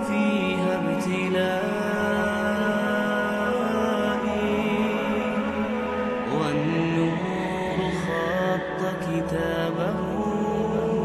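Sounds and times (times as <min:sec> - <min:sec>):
man singing: 0:00.0 - 0:11.0.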